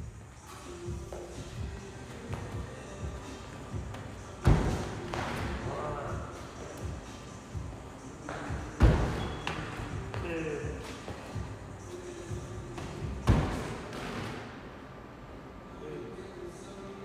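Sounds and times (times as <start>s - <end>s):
heavy thuds on gym floor: 4.4s - 5.6s, 8.7s - 10.3s, 13.0s - 14.4s.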